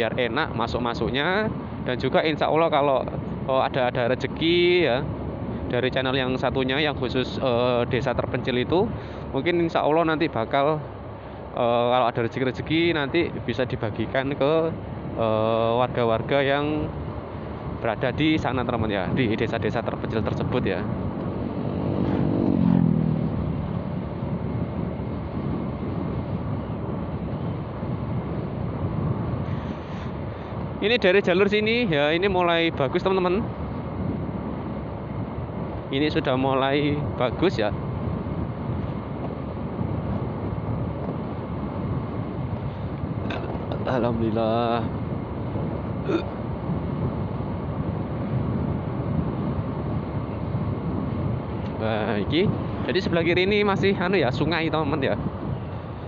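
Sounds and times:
motorcycle engine and road noise: 0.0 - 56.0
motorcycle passing: 20.0 - 30.7.

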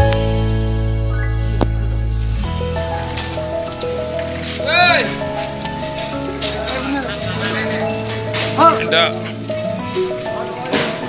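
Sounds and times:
background music melody: 0.0 - 11.0.

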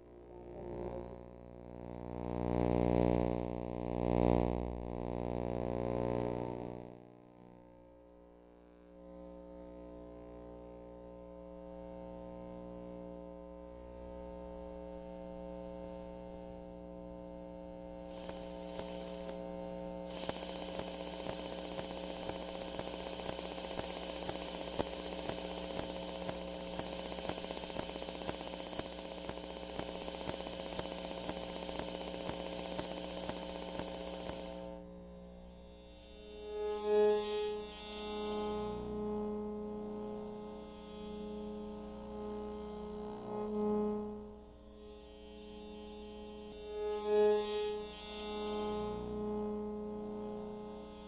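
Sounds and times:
crackling static hiss: 0.0 - 51.0
steady electronic humming tones: 0.0 - 51.0.

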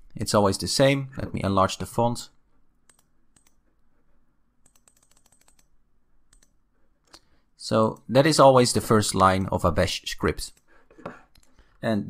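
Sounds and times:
computer clicks: 2.8 - 3.6, 4.6 - 5.7, 6.3 - 7.2.

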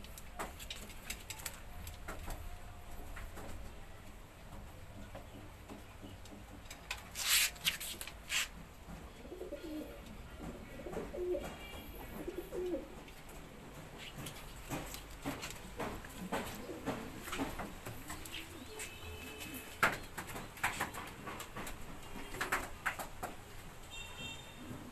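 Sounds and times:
pigeons cooing: 9.2 - 13.0, 15.7 - 20.0.

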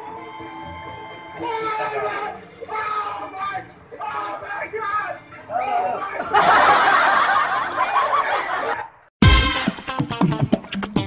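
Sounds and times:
background music: 0.0 - 7.7, 9.2 - 11.0
clamour of voices: 1.2 - 8.9
people snickering: 6.2 - 9.0.

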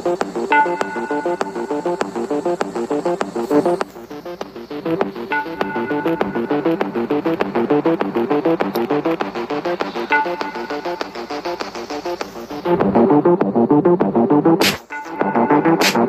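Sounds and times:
electronic synthesizer music: 0.0 - 16.0.

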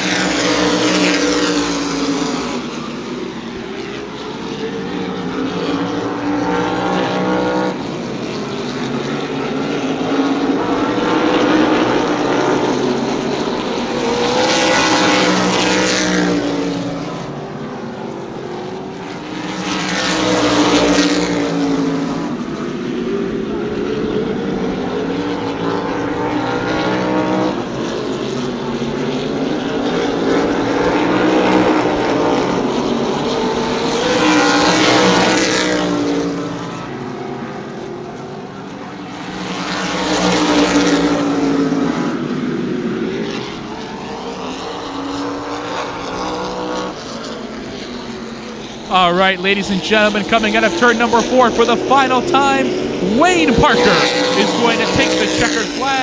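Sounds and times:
race car engines passing: 0.0 - 56.0.

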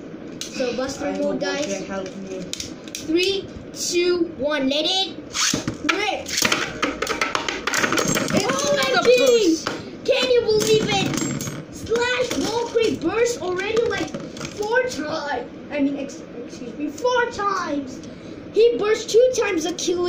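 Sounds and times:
spinning tops clashing and rattling: 6.3 - 9.6, 10.5 - 14.7.

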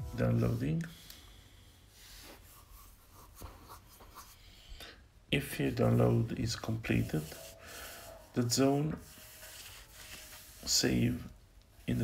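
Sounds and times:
low steady hum: 0.0 - 12.0
rustling handling noise: 6.0 - 12.0.

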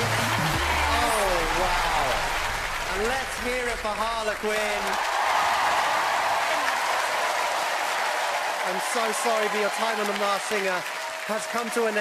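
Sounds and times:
audience applauding: 0.0 - 12.0
man talking: 2.8 - 5.0, 8.6 - 12.0.

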